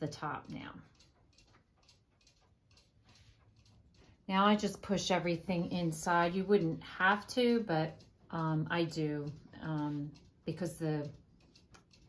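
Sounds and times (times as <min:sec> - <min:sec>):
hand sewing ticks and rustles: 0:00.0 - 0:12.0.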